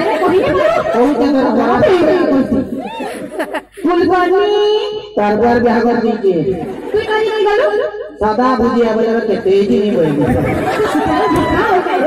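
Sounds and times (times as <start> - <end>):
voices talking over loudspeakers: 0.0 - 2.8.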